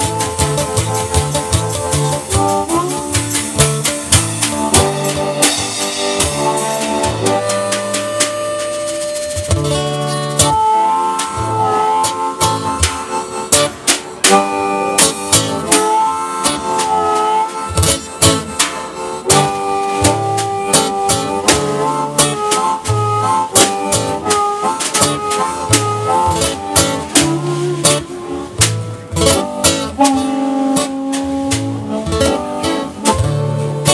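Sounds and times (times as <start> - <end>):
drum kit beat: 0.0 - 33.9
harmonica solo: 0.0 - 33.9
strummed acoustic guitar: 0.0 - 33.9.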